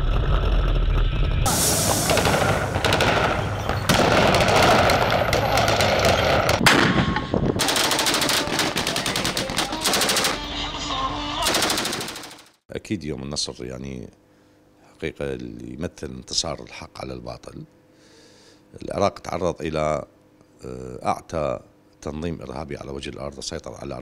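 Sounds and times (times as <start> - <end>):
heavy low rumble: 0.0 - 7.6
machine-gun fire: 1.5 - 7.0, 7.6 - 10.5, 11.4 - 12.6.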